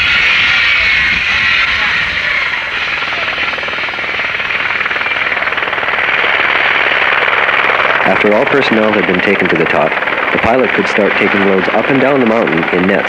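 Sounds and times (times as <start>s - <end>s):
helicopter engine and rotor: 0.0s - 13.0s.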